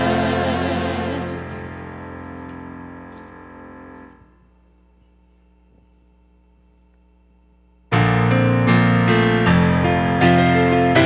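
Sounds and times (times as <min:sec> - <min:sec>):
guitar and keyboard chord ringing: 0:00.0 - 0:04.4, 0:07.9 - 0:11.0
faint steady low hum: 0:00.0 - 0:08.6.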